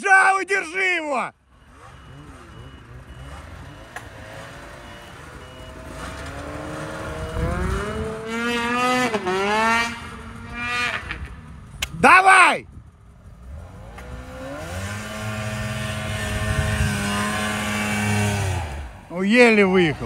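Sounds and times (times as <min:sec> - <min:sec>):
snowmobile engine at full throttle: 0:01.7 - 0:12.4, 0:13.0 - 0:20.0.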